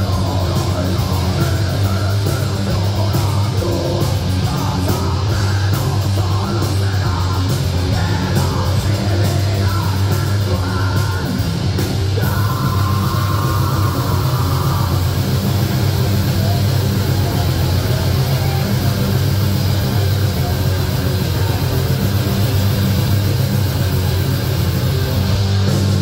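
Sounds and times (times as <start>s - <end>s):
heavy metal band playing: 0.0s - 26.0s.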